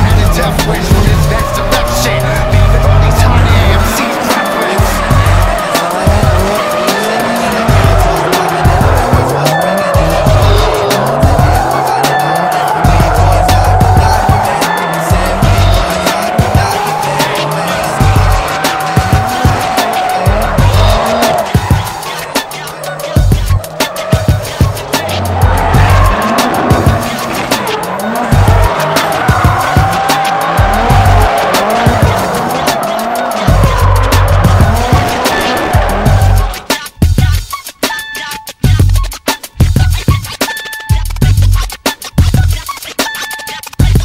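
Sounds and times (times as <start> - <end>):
car engine noise: 0.0 - 37.7
music with heavy bass beat: 0.0 - 44.0
tyre squeal: 0.8 - 36.9.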